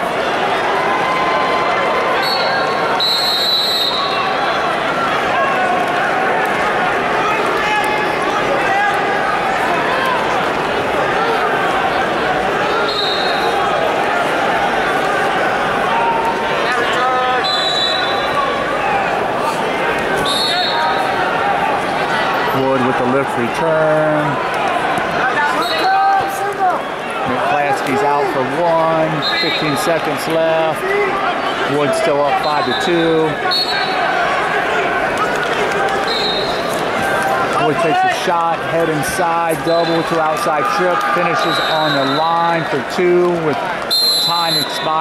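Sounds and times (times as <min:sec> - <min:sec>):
crowd talking and shouting: 0:00.0 - 0:45.0
short whistle blasts: 0:02.2 - 0:04.2, 0:43.9 - 0:44.7.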